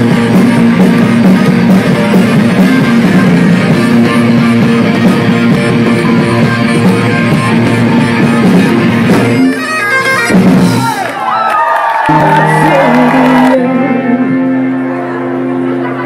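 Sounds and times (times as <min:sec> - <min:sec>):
rock band with bagpipes: 0:00.0 - 0:16.0
crowd whooping and cheering: 0:07.5 - 0:16.0.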